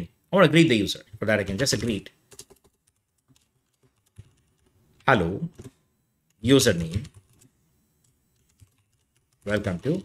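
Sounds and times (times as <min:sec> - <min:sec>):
keyboard typing clicks: 0:01.4 - 0:10.0.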